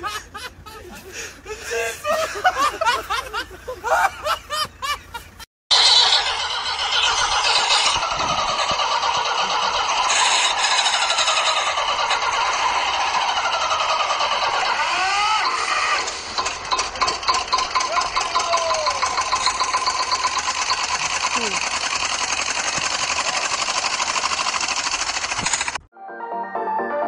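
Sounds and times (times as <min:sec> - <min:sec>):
small engine running rattly: 0:05.1 - 0:25.9
short rising cries: 0:14.7 - 0:16.1.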